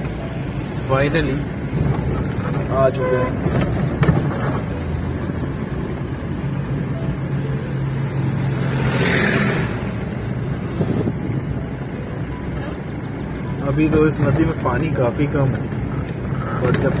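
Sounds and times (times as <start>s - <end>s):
tractor passing rush: 7.8s - 11.2s.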